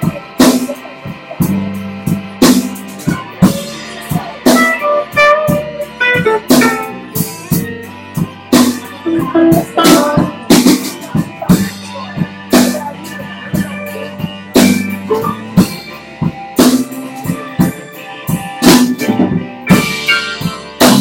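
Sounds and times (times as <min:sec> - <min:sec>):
drum kit beat: 0:00.0 - 0:21.0
electric bass: 0:00.0 - 0:21.0
electric guitar: 0:00.0 - 0:21.0
harmonica: 0:03.3 - 0:07.5.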